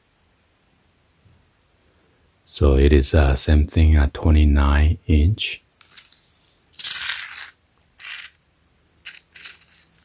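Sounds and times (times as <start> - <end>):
tape measure rattling: 5.8 - 8.4, 9.0 - 10.0.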